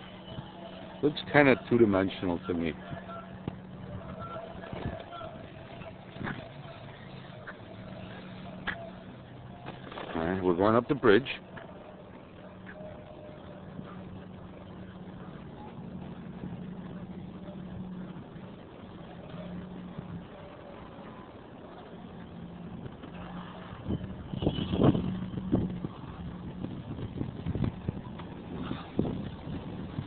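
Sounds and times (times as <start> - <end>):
road traffic hum: 0.0 - 30.0.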